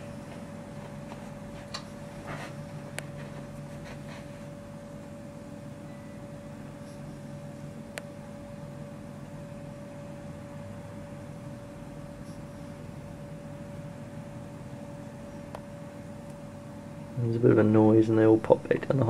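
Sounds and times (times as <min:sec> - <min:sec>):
steady mechanical hum: 0:00.0 - 0:19.0.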